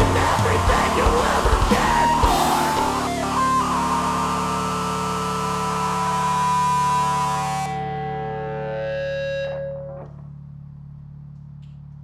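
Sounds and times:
distorted electric guitar chord: 0.0s - 10.8s
low amplifier hum: 0.0s - 12.0s.

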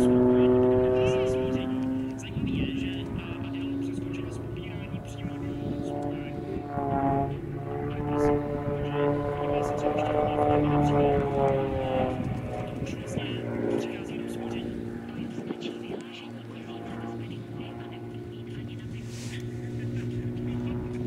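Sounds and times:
propeller plane engine droning: 0.0s - 21.0s.

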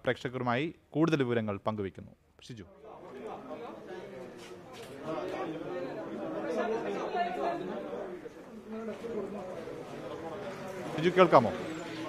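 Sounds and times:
indistinct voices talking: 2.8s - 12.0s.

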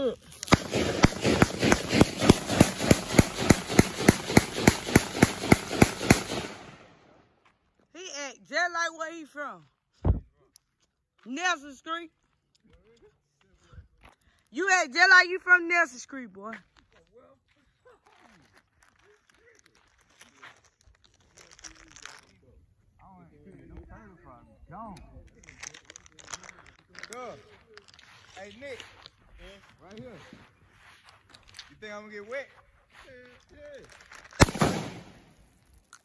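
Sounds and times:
gunshot with echo: 0.5s - 7.0s, 34.4s - 35.4s.

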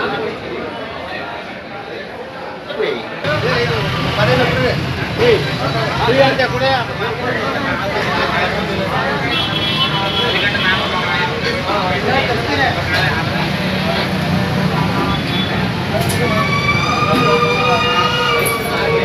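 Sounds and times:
people talking at once: 0.0s - 19.0s
siren-like held tone: 16.2s - 19.0s.

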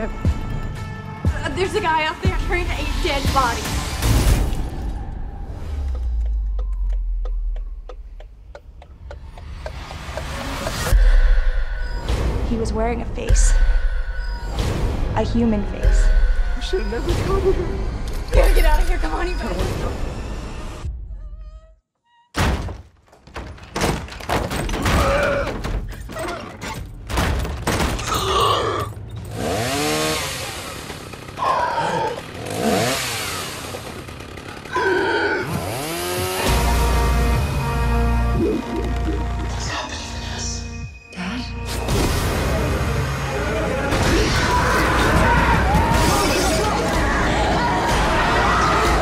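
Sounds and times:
trailer soundtrack music: 0.0s - 22.3s, 34.0s - 49.0s.

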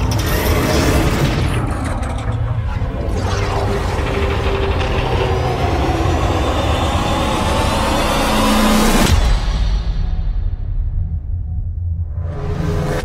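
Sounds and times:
mechanical whine climbing in pitch: 0.0s - 9.4s
deep rumble: 0.0s - 13.0s.

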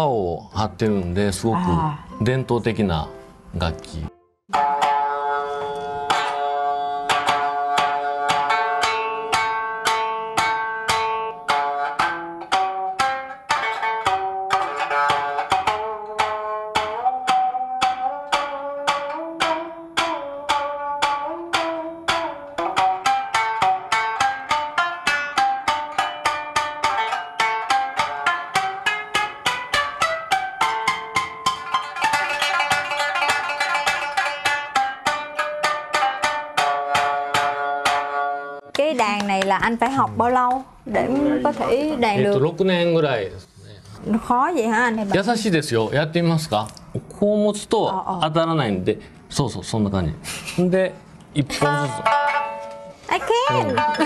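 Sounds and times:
plucked lute melody: 1.6s - 38.7s, 51.5s - 54.0s.

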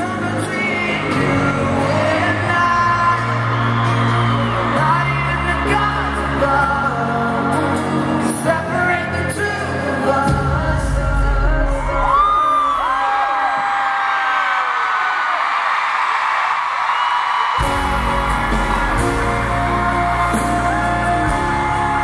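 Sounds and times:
person singing: 0.0s - 13.6s, 17.6s - 22.0s
live pop band: 0.0s - 13.9s, 17.5s - 22.0s
fans screaming: 0.0s - 22.0s.

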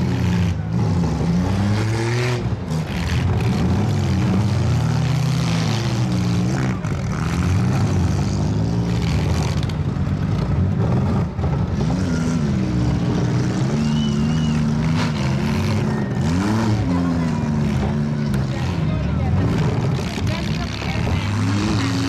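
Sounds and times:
car engines revving: 0.0s - 22.0s.

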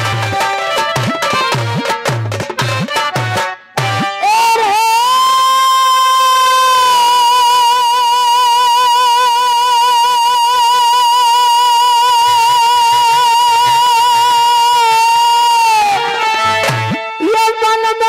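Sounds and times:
folk singer holding high note: 3.8s - 18.0s.

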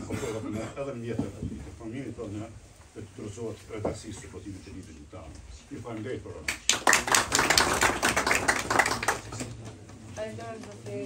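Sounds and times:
audience applause: 6.6s - 9.6s.

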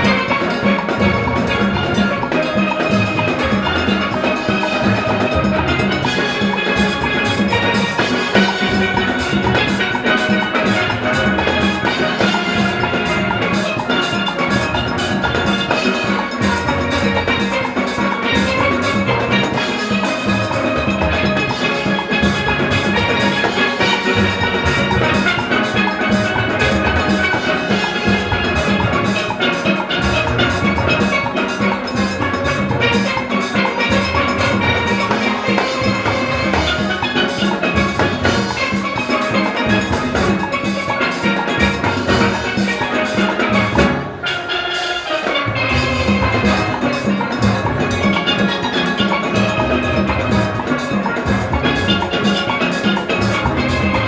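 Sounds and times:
drum kit and hand drums: 0.0s - 54.0s
steelpans playing melody: 0.0s - 54.0s.

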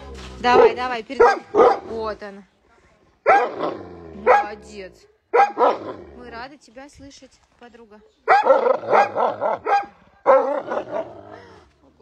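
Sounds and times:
dog hollering: 3.3s - 4.6s, 5.3s - 6.0s, 8.3s - 11.2s.

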